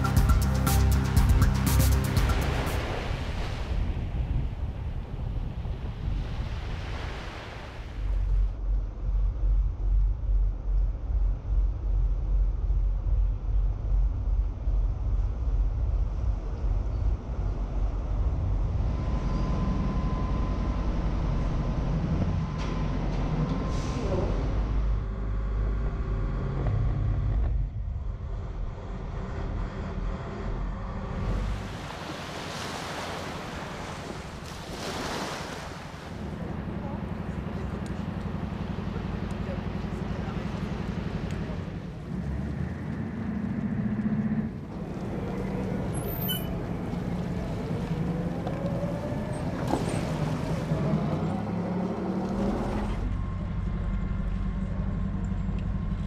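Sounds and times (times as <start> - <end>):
sea: 0.0 - 56.0
wind: 0.0 - 56.0
heavy engine rumble: 8.1 - 32.4, 35.7 - 56.0.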